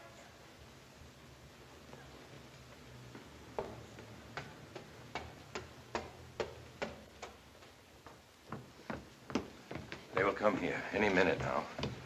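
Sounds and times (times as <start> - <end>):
footsteps on wooden stairs: 1.8 - 12.0.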